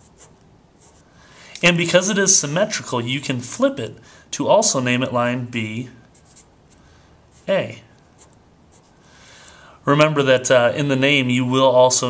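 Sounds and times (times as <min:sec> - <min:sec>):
marker writing on paper: 0:00.0 - 0:01.1, 0:06.1 - 0:06.5, 0:08.2 - 0:09.0.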